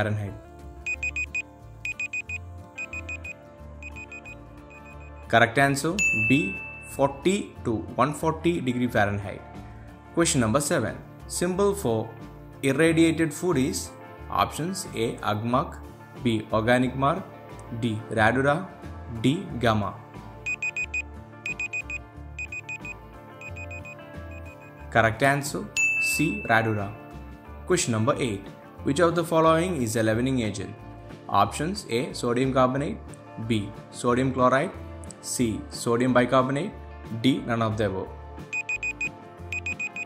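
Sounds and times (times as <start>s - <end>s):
quiet background music: 0.0s - 40.0s
high countdown beeps: 0.9s - 5.3s, 20.5s - 24.9s, 38.5s - 40.0s.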